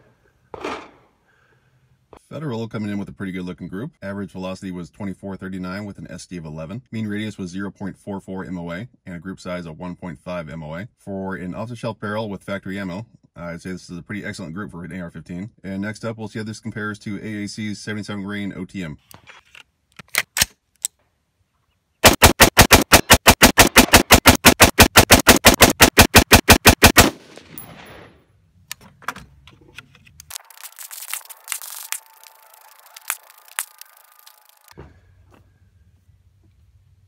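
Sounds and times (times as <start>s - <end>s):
rifle shots: 22.0s - 28.2s.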